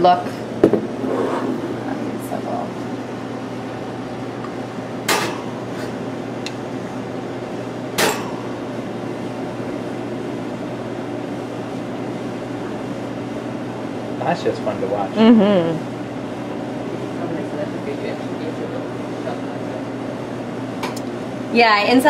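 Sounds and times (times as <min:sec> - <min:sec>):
machine hum: 0:00.0 - 0:22.0.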